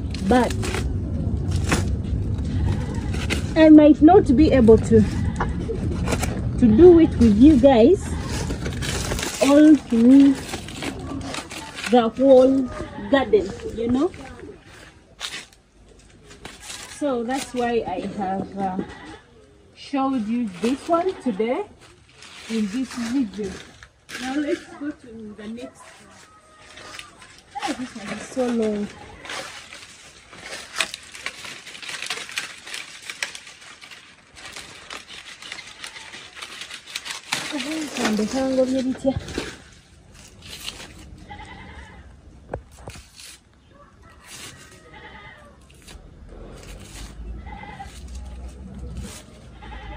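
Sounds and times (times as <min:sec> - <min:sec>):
dry leaf rustling and tearing: 0:00.0 - 0:19.2, 0:19.8 - 0:49.9
goat bleating: 0:05.0 - 0:05.8, 0:18.3 - 0:19.4, 0:41.1 - 0:42.2, 0:44.8 - 0:45.6, 0:47.2 - 0:48.2, 0:49.1 - 0:49.9.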